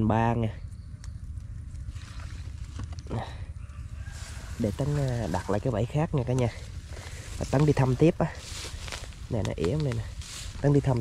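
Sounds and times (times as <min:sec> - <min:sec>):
wind rumble on microphone: 0:00.0 - 0:11.0
rustling in grass: 0:03.8 - 0:11.0.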